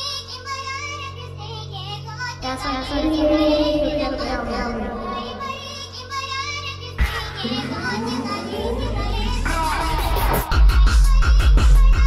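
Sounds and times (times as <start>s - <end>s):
deep bass note: 2.4s - 5.8s
hardtekk electronic music: 2.4s - 6.0s, 7.0s - 12.0s
pitched-up wavering vocal sample: 2.4s - 6.0s, 7.0s - 10.0s
rising synth sweeps: 2.6s - 5.8s.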